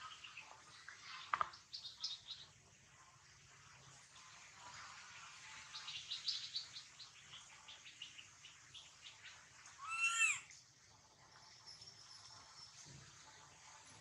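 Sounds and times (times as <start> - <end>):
baby macaque crying: 9.8 - 10.5.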